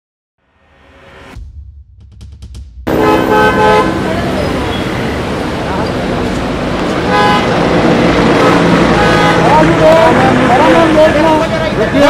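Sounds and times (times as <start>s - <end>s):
vehicle horn honking: 2.9s - 5.2s, 7.0s - 7.6s, 8.3s - 9.7s
street traffic noise: 2.9s - 12.0s.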